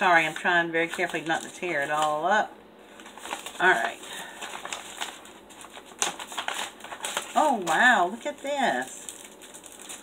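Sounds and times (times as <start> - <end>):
paper packaging rustling: 0.0 - 2.3, 2.9 - 10.0.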